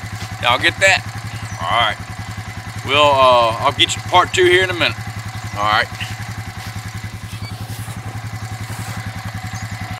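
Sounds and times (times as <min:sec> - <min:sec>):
atv engine idling: 0:00.0 - 0:09.9.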